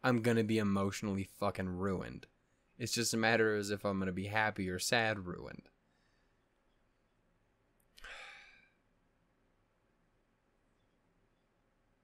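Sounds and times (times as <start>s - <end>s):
man sighing: 8.0s - 8.8s.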